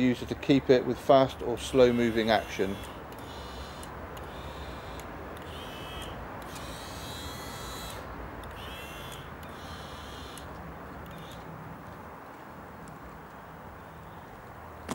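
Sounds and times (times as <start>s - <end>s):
steady background hum: 0.0s - 14.9s
small electric motors whining: 1.0s - 11.5s
faint clicks: 1.3s - 13.5s.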